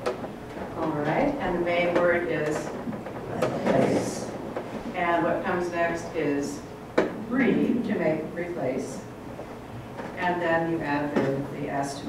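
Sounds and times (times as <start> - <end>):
person speaking: 0.7 - 9.1.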